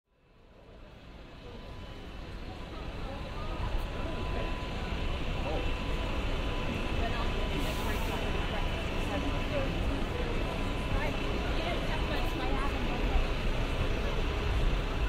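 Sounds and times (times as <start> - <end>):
pedestrians chattering: 0.2 - 15.0
road traffic: 0.3 - 15.0.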